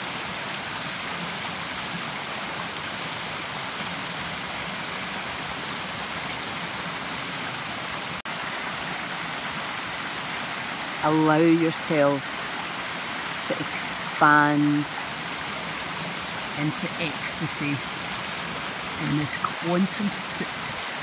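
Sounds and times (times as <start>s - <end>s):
stream rushing over rocks: 0.0s - 21.0s.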